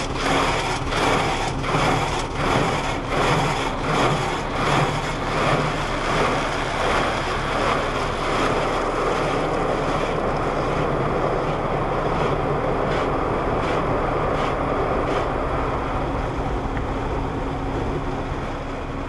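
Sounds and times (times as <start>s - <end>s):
water spray on car: 0.0s - 19.0s.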